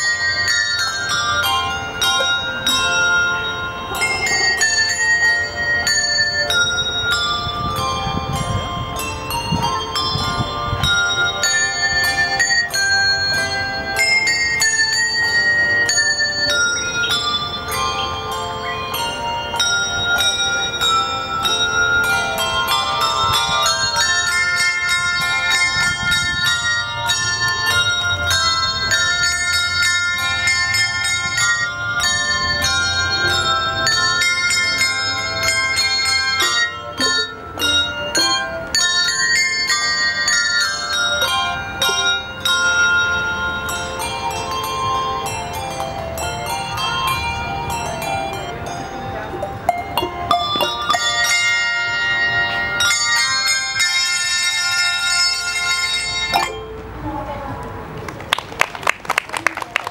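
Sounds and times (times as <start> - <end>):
handbell ensemble playing: 0.0 - 58.0.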